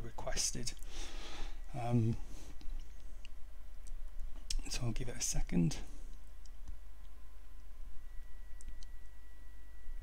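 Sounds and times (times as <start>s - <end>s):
faint thin whine: 0.0s - 10.0s
steady low hum: 0.0s - 10.0s
faint clicks: 8.5s - 9.0s.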